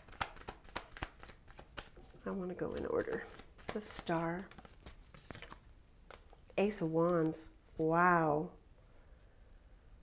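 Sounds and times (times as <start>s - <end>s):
cards being shuffled: 0.0s - 7.5s.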